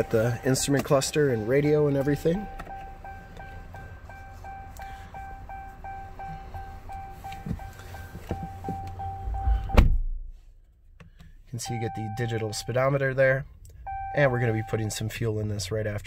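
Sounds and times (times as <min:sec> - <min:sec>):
car warning chime beeping: 0:00.0 - 0:09.8, 0:11.6 - 0:16.0
car door shutting: 0:07.1 - 0:10.2.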